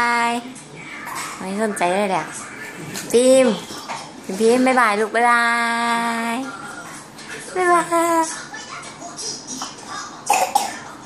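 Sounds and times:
person coughing: 0:10.3 - 0:10.8.

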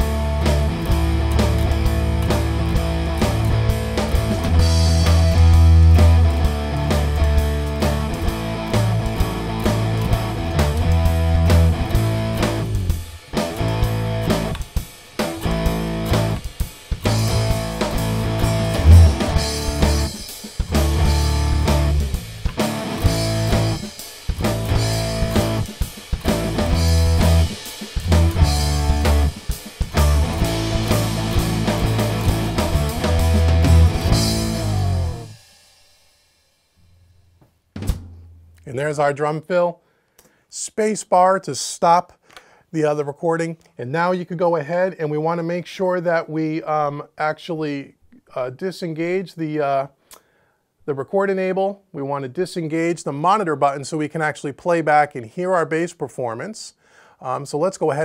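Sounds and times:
electric bass guitar: 0:00.0 - 0:35.4
electric guitar: 0:00.0 - 0:35.4
drum kit: 0:00.0 - 0:39.1.

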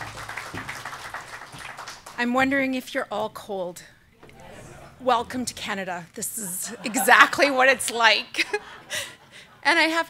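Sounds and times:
audience applauding: 0:00.0 - 0:02.3.

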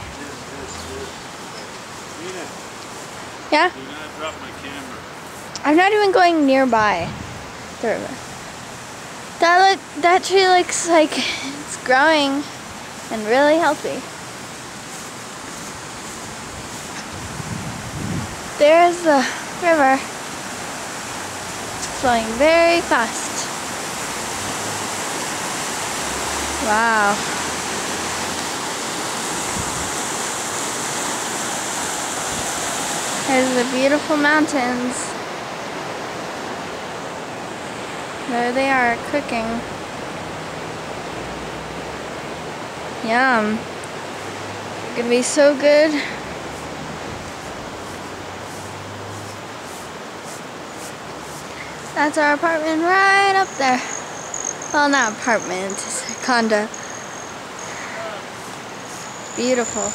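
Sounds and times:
river rushing: 0:00.0 - 0:59.9.

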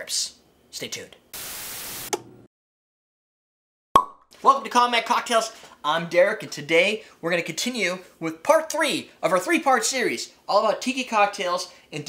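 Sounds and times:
static hiss: 0:01.4 - 0:02.1.

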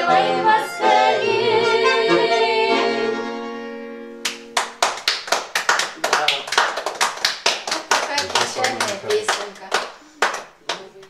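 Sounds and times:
accordion chord: 0:00.0 - 0:04.8
people clapping: 0:04.2 - 0:11.0.

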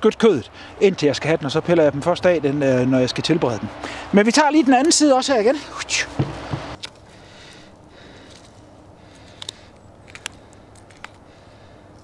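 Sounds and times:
rustle and low thump: 0:06.1 - 0:06.8.

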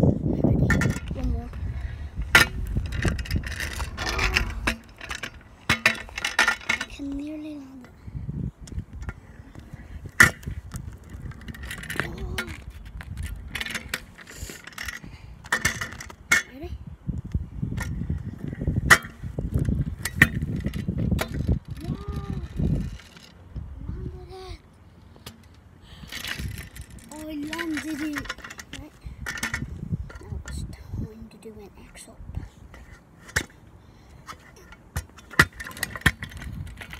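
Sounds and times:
scooter wheels rolling on tarmac: 0:00.3 - 0:07.9, 0:08.6 - 0:16.4, 0:17.2 - 0:36.9
scooter deck knocks and clatters: 0:02.3 - 0:07.0, 0:27.2 - 0:30.2, 0:34.3 - 0:36.9.

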